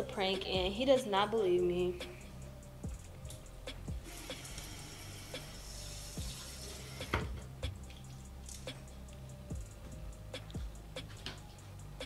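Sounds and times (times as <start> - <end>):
quiet background music: 0.0 - 12.0
water running from tap: 4.1 - 7.4.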